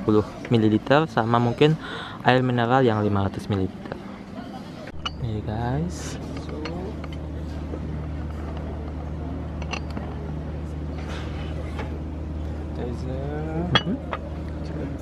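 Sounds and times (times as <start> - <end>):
faint voices: 0.0 - 15.0
low hum: 4.8 - 15.0
ceramic tableware clinking: 4.9 - 5.4, 6.2 - 7.4, 9.6 - 10.2, 13.7 - 14.3.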